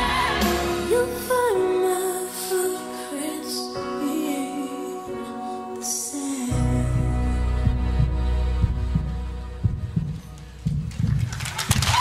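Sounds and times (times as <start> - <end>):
heartbeat thumps: 7.6 - 11.9.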